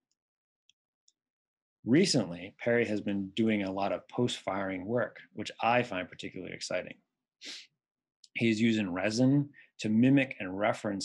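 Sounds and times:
man speaking: 0:01.9 - 0:07.0, 0:08.3 - 0:11.0.

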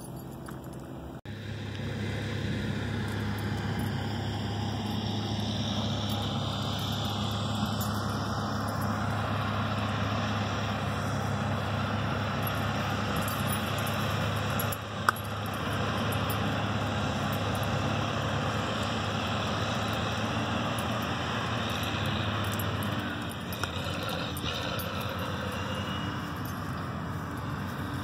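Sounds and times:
distant diesel engine drone: 0:00.0 - 0:28.0.

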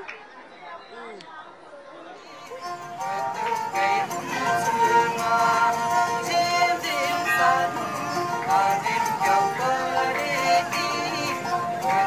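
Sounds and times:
indistinct voices chattering: 0:00.0 - 0:12.0.

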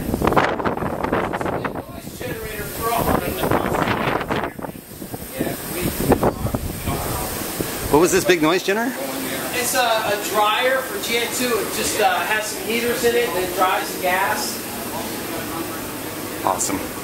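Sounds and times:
wind buffeting microphone: 0:00.0 - 0:08.3.

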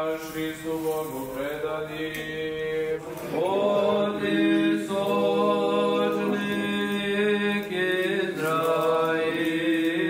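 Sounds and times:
voices chanting in long notes: 0:00.0 - 0:10.0.

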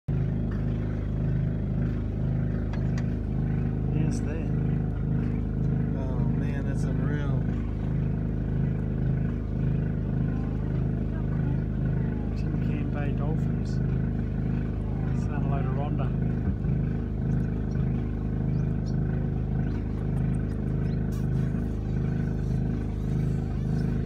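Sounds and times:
boat engine idling: 0:00.1 - 0:24.0.

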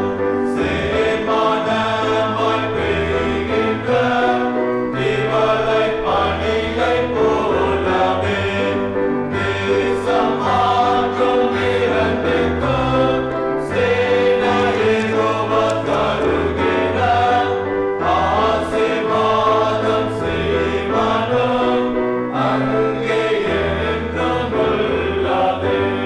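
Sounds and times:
church choir singing a hymn: 0:00.0 - 0:26.0.

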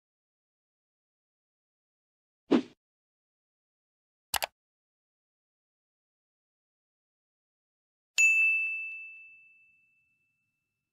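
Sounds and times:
bright bell ding: 0:08.2 - 0:10.4.

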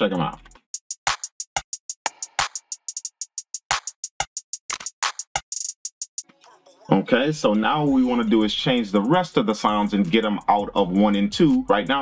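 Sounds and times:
programmed drum beat: 0:00.0 - 0:06.4, 0:07.0 - 0:12.0.

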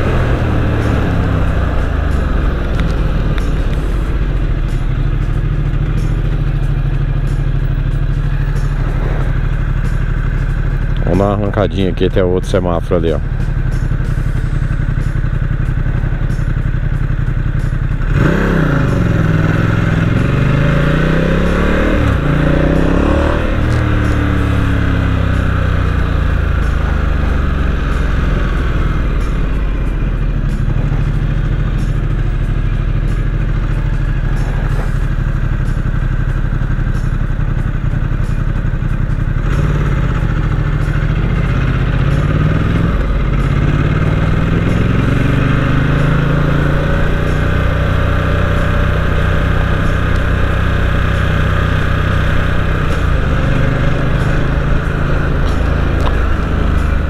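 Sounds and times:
motorcycle engine accelerating: 0:00.0 - 0:57.0.

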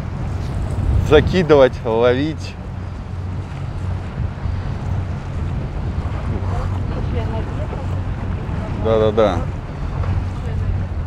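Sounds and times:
wash of the sea: 0:00.0 - 0:11.0
wind blowing on microphone: 0:00.0 - 0:11.0.

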